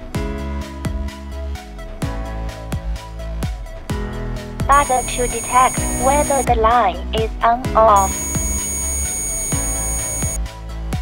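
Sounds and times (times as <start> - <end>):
high-pitched multimeter beep: 4.7 - 6.5, 7.9 - 10.4.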